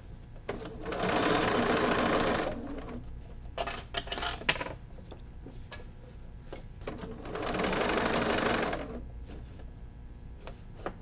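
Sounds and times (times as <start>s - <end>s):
sewing machine stitching: 0.6s - 3.0s, 7.0s - 9.0s.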